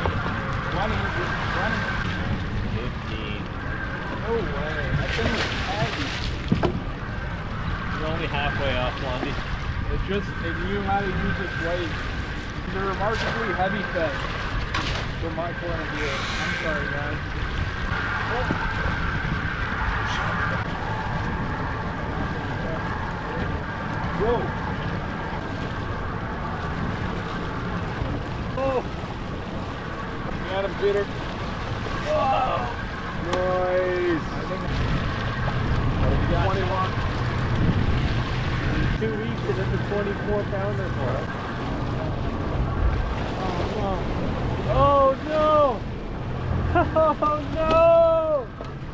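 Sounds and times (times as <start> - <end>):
outboard motor running: 0.0 - 48.9
water noise: 0.0 - 48.9
wind: 0.0 - 48.9
man calling out: 47.3 - 48.5.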